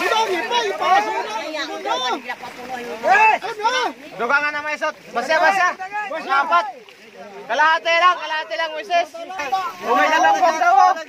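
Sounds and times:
men's voices chattering: 0:00.0 - 0:11.0.

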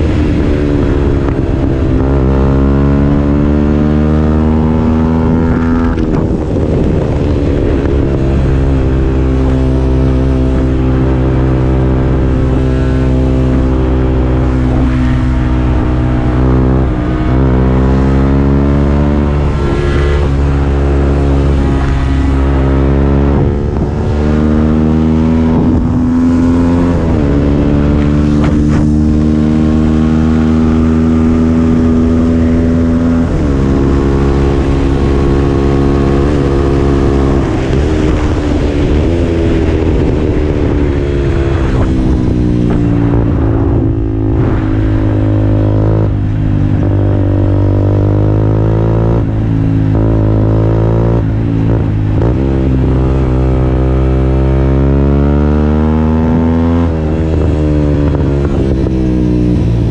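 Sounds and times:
motorcycle engine running: 0:00.0 - 0:59.9
wind noise: 0:00.0 - 0:59.9.

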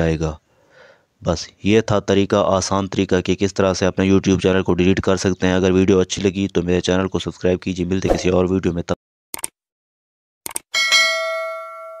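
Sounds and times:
quick clicks: 0:09.4 - 0:09.6, 0:10.4 - 0:10.7.

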